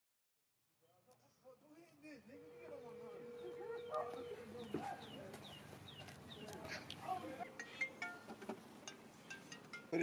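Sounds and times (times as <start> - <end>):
bird chirping: 2.2 - 10.0.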